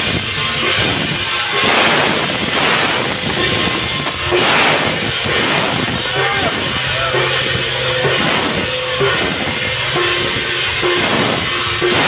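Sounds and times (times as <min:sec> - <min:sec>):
cymbals and gongs clashing: 0:00.0 - 0:12.0
drums: 0:00.0 - 0:12.0.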